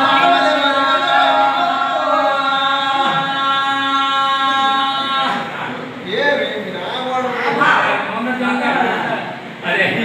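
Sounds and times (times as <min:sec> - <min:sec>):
man singing long note: 0:00.0 - 0:05.6.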